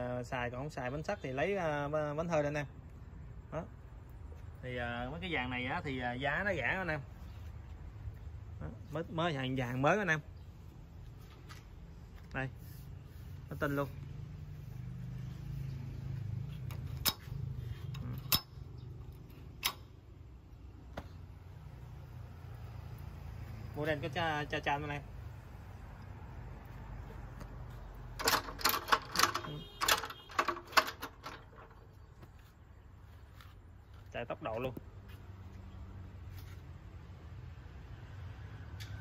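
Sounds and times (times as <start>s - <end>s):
sharp click: 19.6s - 20.0s.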